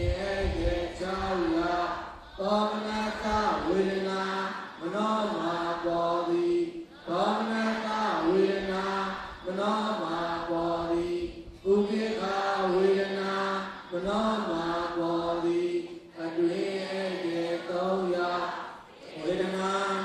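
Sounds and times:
man chanting: 0:00.0 - 0:18.5, 0:19.2 - 0:20.0.

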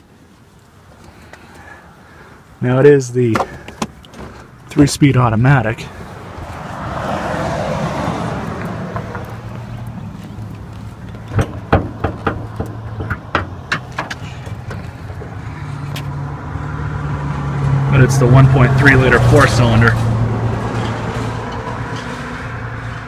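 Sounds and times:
sharp clicks and knocks: 0:10.5 - 0:16.1.

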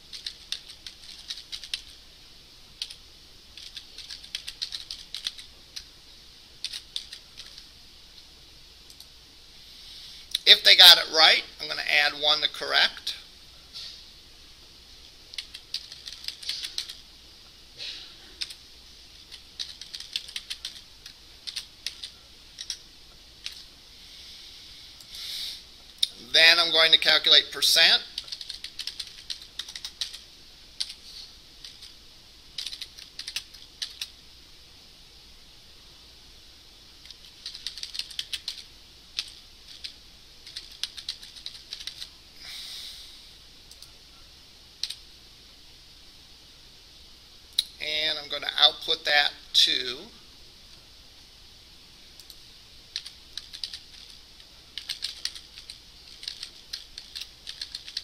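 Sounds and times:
typing on computer keyboard: 0:00.0 - 0:02.0, 0:03.6 - 0:05.5, 0:06.6 - 0:07.6, 0:15.4 - 0:17.0, 0:19.3 - 0:22.8, 0:28.2 - 0:30.2, 0:32.6 - 0:34.1, 0:37.0 - 0:38.6, 0:39.2 - 0:42.1, 0:52.2 - 0:54.2, 0:54.8 - 0:58.0.

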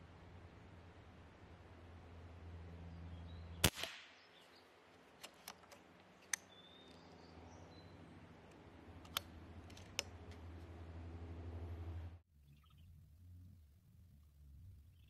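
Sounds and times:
air rifle shot: 0:03.6 - 0:04.4
metallic clicks of rifle action: 0:05.1 - 0:07.0, 0:08.5 - 0:10.5.

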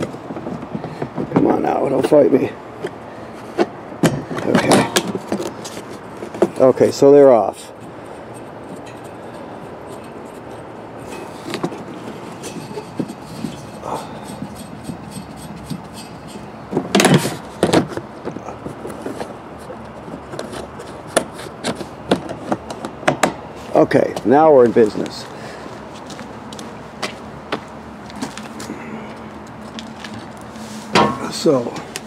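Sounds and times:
rubbing and handling knocks: 0:00.0 - 0:02.2, 0:02.8 - 0:25.2.

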